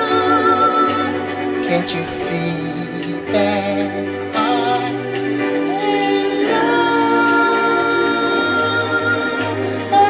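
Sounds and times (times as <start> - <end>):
sustained backing chords: 0.0 - 10.0.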